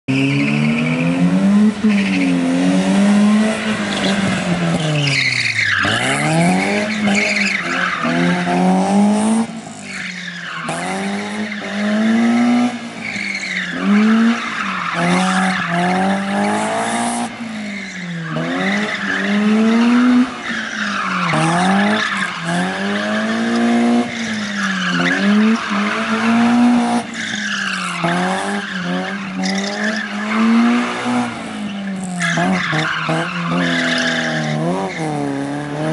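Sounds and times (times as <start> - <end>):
car engine revving: 0.1 - 35.9
tyre squeal: 3.9 - 8.6, 31.6 - 35.3.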